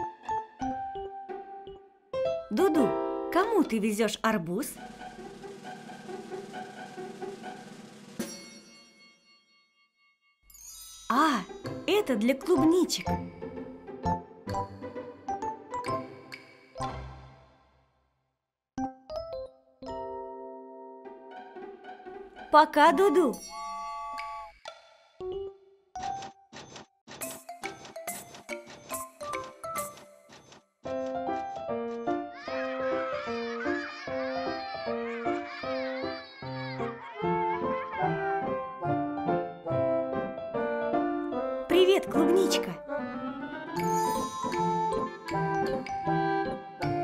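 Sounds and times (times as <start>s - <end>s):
cartoon background music: 0.0s - 8.6s, 11.0s - 17.6s, 18.8s - 26.2s, 27.2s - 30.3s, 30.9s - 47.0s
bell-like chime: 8.2s - 11.7s, 23.3s - 24.6s, 43.8s - 46.0s.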